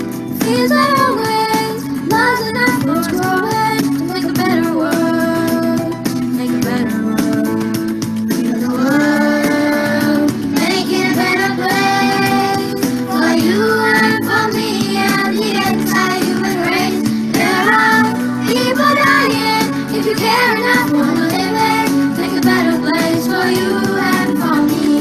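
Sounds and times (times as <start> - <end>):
instrumental accompaniment: 0.0 - 25.0
children singing together: 8.4 - 25.0.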